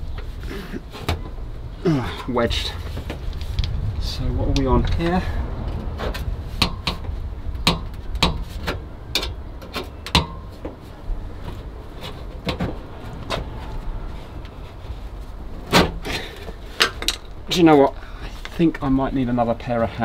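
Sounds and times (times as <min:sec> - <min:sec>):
low rumble: 0:02.6 - 0:08.2, 0:11.0 - 0:17.5
sheet metal panel clicks and knocks: 0:06.6 - 0:10.8.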